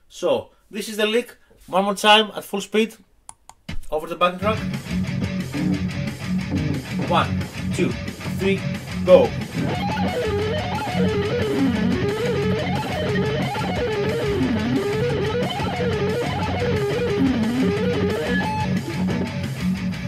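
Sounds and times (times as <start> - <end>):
backing track: 4.4 - 20.0
fast electric guitar lick: 4.4 - 20.0.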